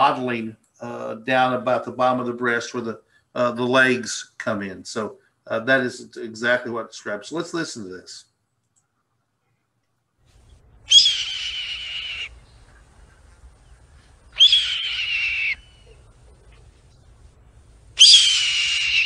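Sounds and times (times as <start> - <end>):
hawk screaming: 10.9 - 12.4, 14.3 - 16.6, 18.0 - 19.0.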